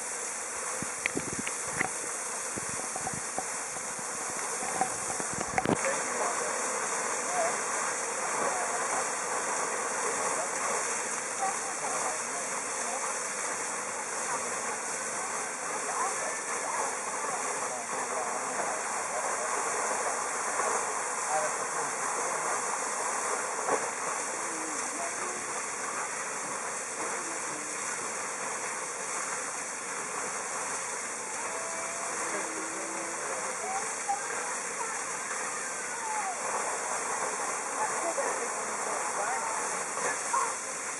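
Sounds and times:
geyser water jet splashing: 0.0 - 40.9.

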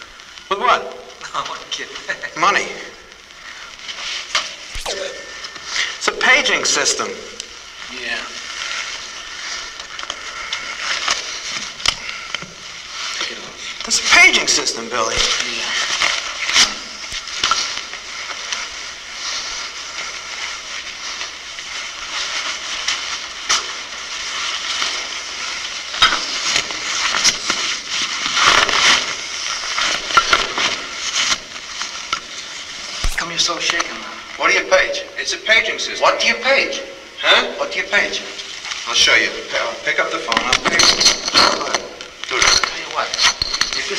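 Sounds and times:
crackling static: 0.0 - 43.9
steady hiss: 0.0 - 43.9
indistinct voices: 0.5 - 3.2, 4.8 - 8.4.

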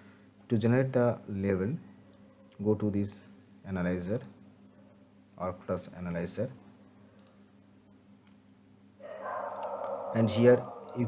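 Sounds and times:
dog's drawn-out vocal sound: 9.0 - 11.0.

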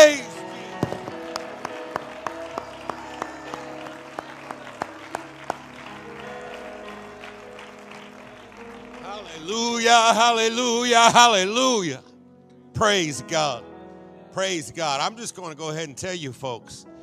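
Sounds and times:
hand clapping in rhythm: 0.8 - 10.2.

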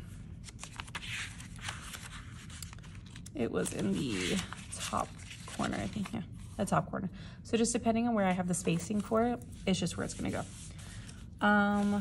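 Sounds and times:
paper pages rustling: 0.4 - 6.2.

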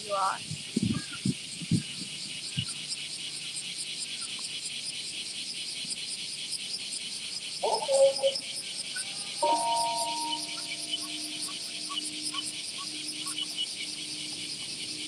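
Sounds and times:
cicadas buzzing: 0.0 - 15.0
short pitched call: 7.6 - 8.4.

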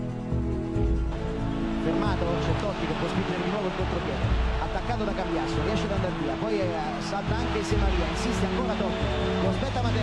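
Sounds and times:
background music with held notes: 0.0 - 10.0
man commentating: 1.8 - 10.0.

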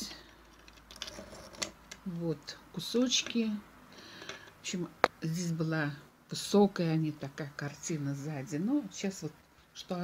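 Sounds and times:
coral pieces clicking: 0.3 - 2.0.

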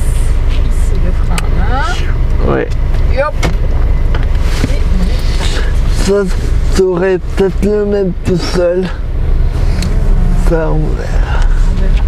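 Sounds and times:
car engine rumbling: 0.0 - 12.0.

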